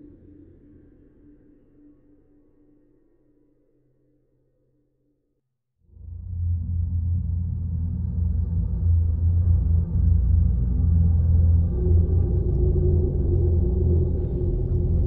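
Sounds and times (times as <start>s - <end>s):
low rumbling suspense drone: 5.9s - 15.0s.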